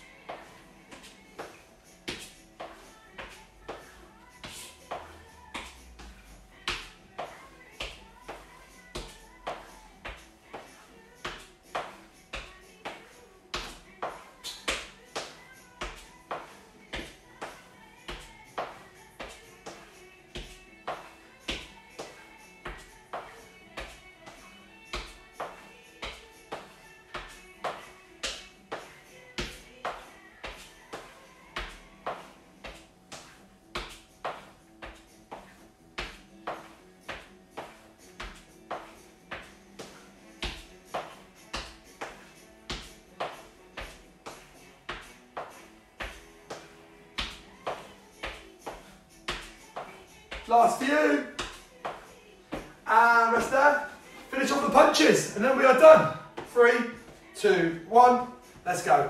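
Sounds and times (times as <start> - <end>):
quiet background music: 0.0 - 59.0.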